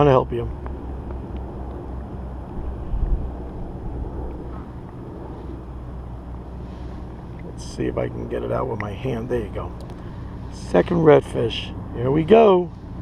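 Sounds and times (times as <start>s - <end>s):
wind buffeting microphone: 0.0s - 10.4s.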